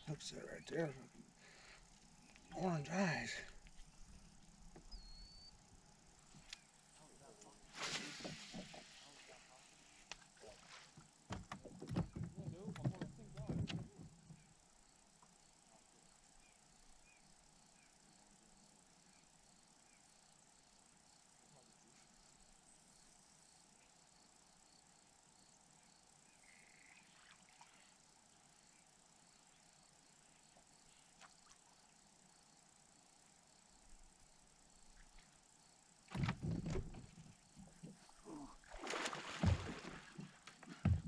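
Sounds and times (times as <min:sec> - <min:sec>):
loud knocks and rustling: 0:11.3 - 0:14.1, 0:36.1 - 0:37.4, 0:39.0 - 0:41.0.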